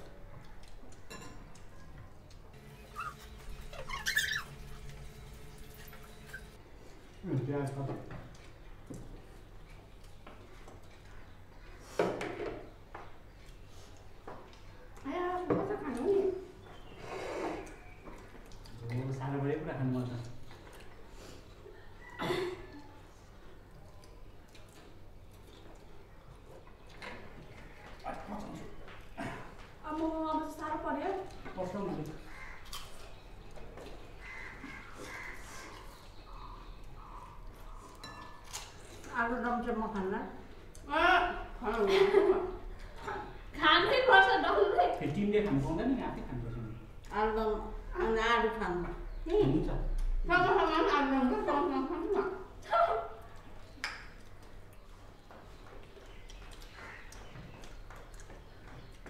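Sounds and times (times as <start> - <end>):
people eating mouth sounds: 0.0 - 12.0, 15.9 - 29.8, 31.2 - 39.2, 52.0 - 59.0.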